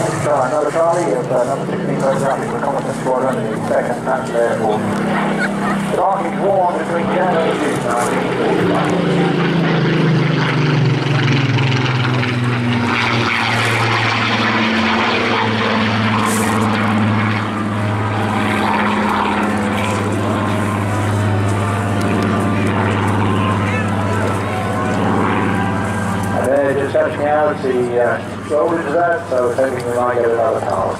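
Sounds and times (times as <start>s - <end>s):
propeller plane engine drone: 0.0s - 30.9s.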